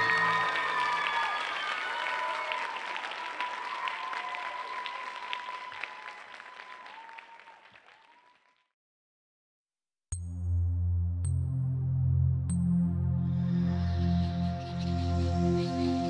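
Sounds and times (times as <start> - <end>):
voices cheering: 0.0 - 8.4
audience applauding: 0.0 - 8.7.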